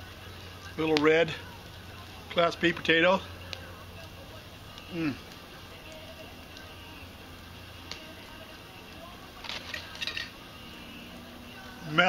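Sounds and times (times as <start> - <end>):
low background hiss: 0.0 - 12.0
glass bottle clinking: 9.6 - 10.3.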